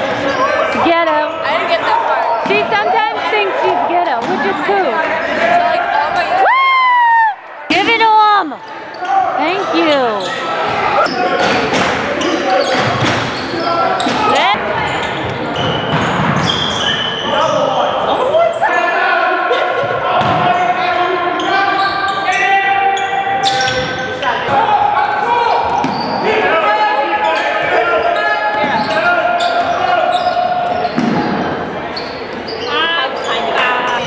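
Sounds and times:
shoes squeaking: 0:00.0 - 0:06.4, 0:07.7 - 0:18.6, 0:20.5 - 0:24.4, 0:25.4 - 0:26.3, 0:27.2 - 0:34.0
crowd voices: 0:00.0 - 0:34.0
players and spectators calling out: 0:00.0 - 0:34.0.

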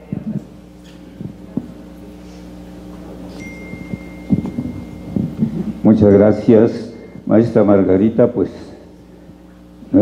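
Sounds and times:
sound system hum: 0:00.0 - 0:10.0
microphone handling knocks: 0:03.8 - 0:05.8.

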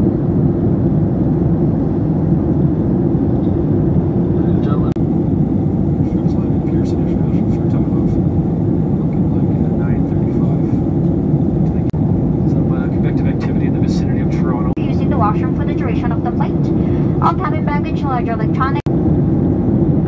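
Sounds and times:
jet engine and airflow noise: 0:00.0 - 0:20.0.

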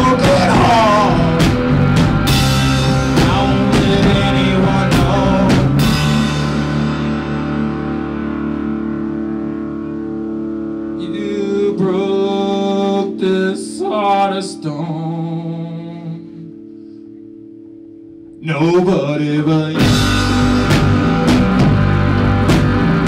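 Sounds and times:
person singing: 0:00.0 - 0:02.0, 0:02.8 - 0:06.2, 0:10.9 - 0:16.6, 0:18.4 - 0:20.3
drum hits: 0:00.0 - 0:07.2, 0:19.9 - 0:23.0
electric guitars ringing chord: 0:00.0 - 0:23.0.

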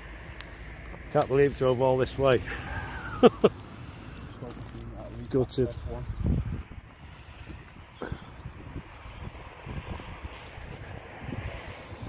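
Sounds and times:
footsteps through long grass: 0:00.0 - 0:12.0
wind rumbling on microphone: 0:00.0 - 0:12.0.

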